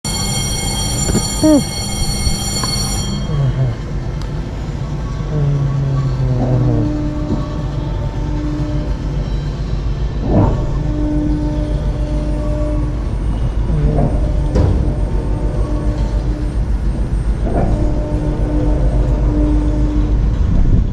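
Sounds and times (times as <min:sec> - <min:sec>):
horn-like warning tone: 0:00.1 - 0:20.8
low rumble of ride motion: 0:00.1 - 0:20.9.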